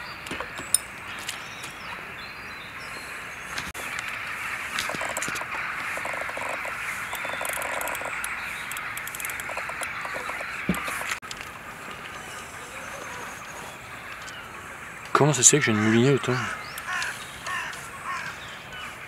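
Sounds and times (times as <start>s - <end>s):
chorus of calling wildlife: 0.0s - 19.0s
fishing reel clicking: 7.2s - 9.8s.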